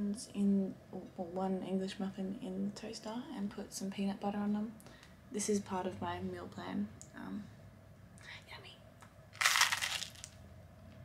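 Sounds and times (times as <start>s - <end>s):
crunchy bite into toast: 9.4s - 10.4s.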